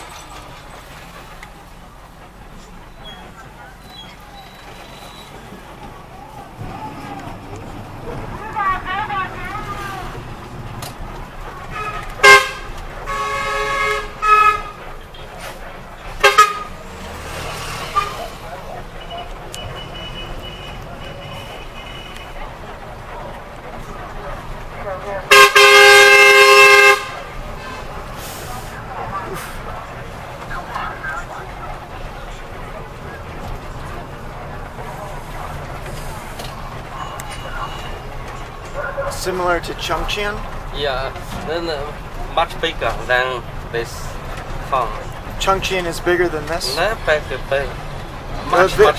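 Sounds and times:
faint voices: 0.0 - 13.1, 14.0 - 25.4, 27.0 - 48.9
moving bus drone: 0.0 - 48.9
bus horn honking: 11.6 - 18.4, 19.5 - 22.6, 25.3 - 28.4.

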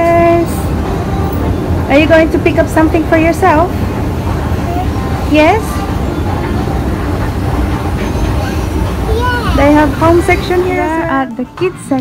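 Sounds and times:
escalator rumbling and rattling: 0.0 - 12.0.

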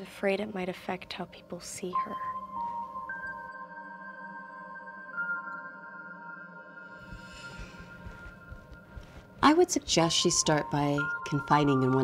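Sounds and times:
steady low drone: 7.0 - 9.5.

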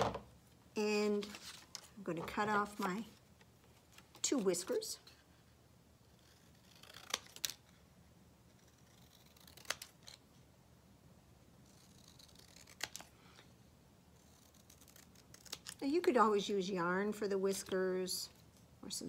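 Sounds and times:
scissors cutting paper: 6.1 - 7.7, 8.5 - 10.2, 11.6 - 13.1, 14.2 - 16.0.

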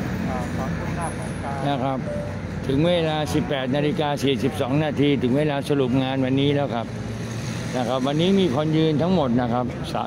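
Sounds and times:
low hum of street traffic: 0.0 - 10.0.

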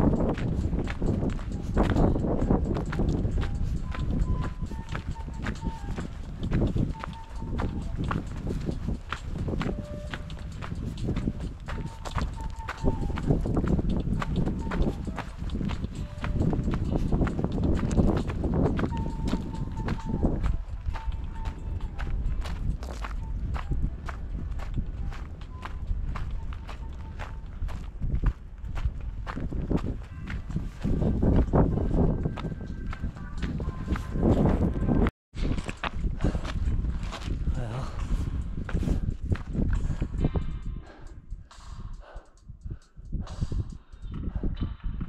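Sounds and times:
footsteps crunching on gravel: 0.0 - 40.0.

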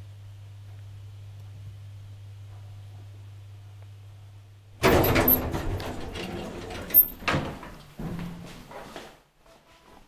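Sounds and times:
elevator low hum: 0.9 - 8.7
elevator door sliding open rattling: 4.8 - 8.4.

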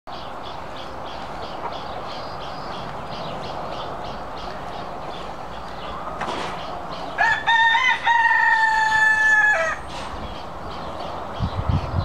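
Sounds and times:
rooster crowing: 7.2 - 9.9.

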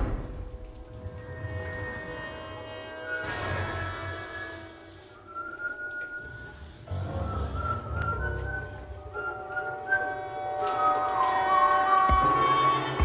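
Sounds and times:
soft background music: 0.0 - 13.0
person whistling a tune: 5.1 - 12.8.

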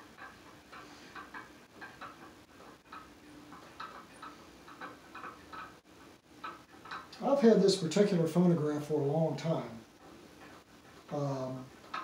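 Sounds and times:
phonograph mechanism clicking: 0.0 - 12.0.

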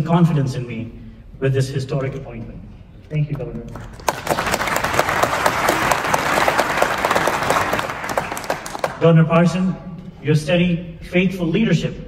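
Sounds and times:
audience applauding: 3.8 - 9.0.

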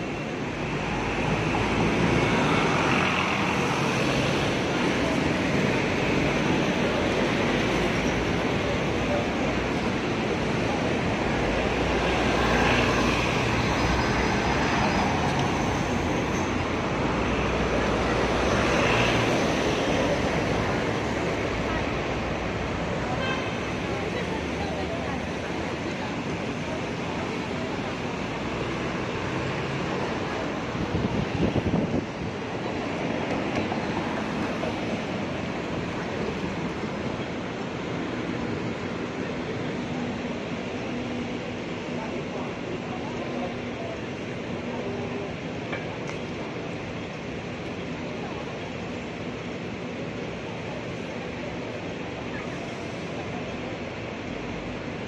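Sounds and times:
traffic driving past: 0.0 - 55.0.

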